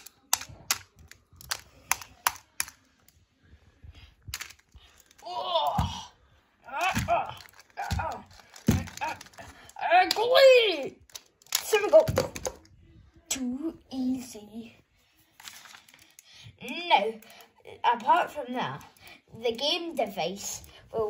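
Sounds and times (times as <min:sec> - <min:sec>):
plastic toy figures clicking: 0:00.0 - 0:03.2, 0:04.3 - 0:05.2, 0:06.7 - 0:12.7
child making play-fight sounds: 0:05.2 - 0:12.6, 0:13.3 - 0:14.8, 0:16.6 - 0:21.0.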